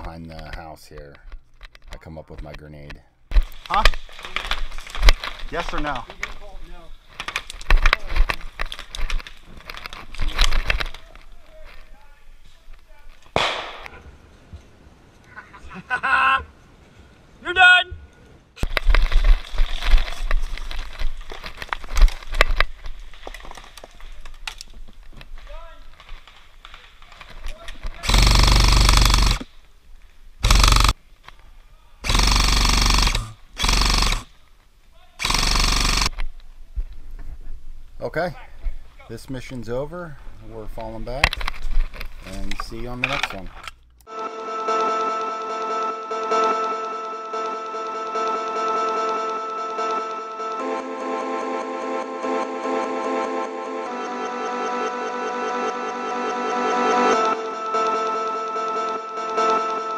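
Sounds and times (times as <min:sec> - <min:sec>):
rustling in dry leaves: 0:18.7 - 0:27.7
airsoft rifle full-auto bursts: 0:28.0 - 0:29.4, 0:30.4 - 0:31.0, 0:32.0 - 0:34.3, 0:35.2 - 0:36.2.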